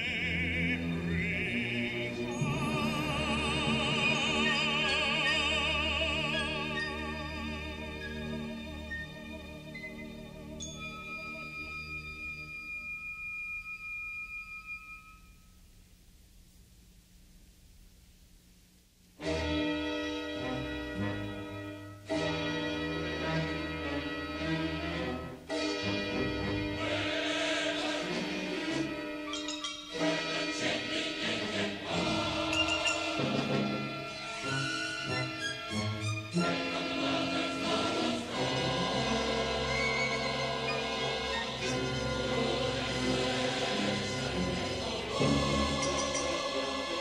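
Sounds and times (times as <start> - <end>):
chorus singing with orchestra: 0.0 - 11.9, 22.1 - 47.0
faint low hum and hiss: 0.0 - 43.2.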